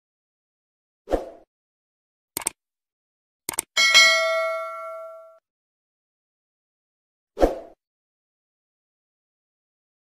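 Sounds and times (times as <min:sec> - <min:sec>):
bell-like chime: 0:03.8 - 0:05.4.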